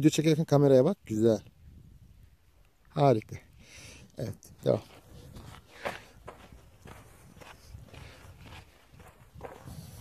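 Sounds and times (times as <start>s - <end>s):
footsteps on sandy dirt: 4.5s - 10.0s.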